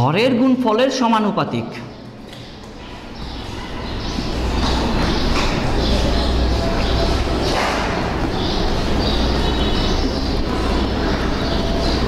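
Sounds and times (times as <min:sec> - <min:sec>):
loud background hum: 0:00.0 - 0:12.0
marker squeaking on whiteboard: 0:02.2 - 0:12.0.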